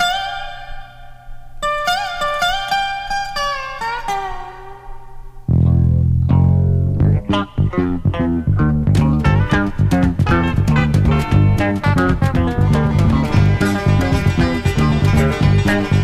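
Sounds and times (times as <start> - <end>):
dobro playing sliding notes: 0.0 - 16.0
bluegrass band playing: 8.2 - 16.0.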